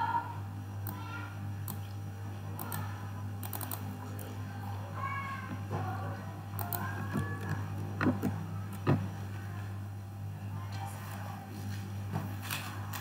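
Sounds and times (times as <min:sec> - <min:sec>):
steady low hum: 0:00.0 - 0:13.0
computer mouse clicks: 0:03.4 - 0:03.8, 0:06.6 - 0:08.9.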